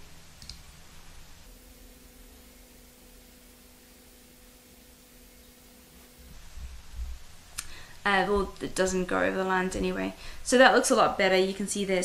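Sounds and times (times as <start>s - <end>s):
faint steady hum: 0.0s - 12.0s
computer mouse click: 0.4s - 0.6s.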